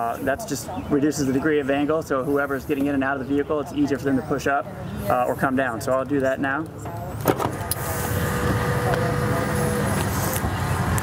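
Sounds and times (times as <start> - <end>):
faint motor whine: 6.9 - 11.0
electric door motor whirring: 7.2 - 11.0.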